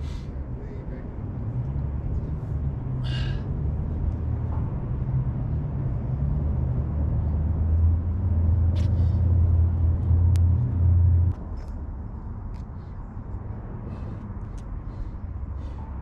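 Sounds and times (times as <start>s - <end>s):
low mechanical rumble: 7.1s - 16.0s.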